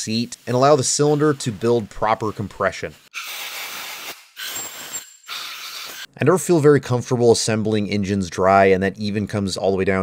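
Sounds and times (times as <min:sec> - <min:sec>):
steel tool scraping in valve guide: 0:03.2 - 0:06.1.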